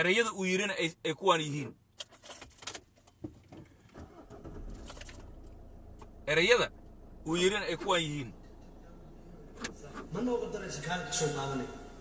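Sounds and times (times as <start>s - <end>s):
car keys rattling: 1.9s - 7.0s
car engine starting and idling: 3.4s - 12.0s.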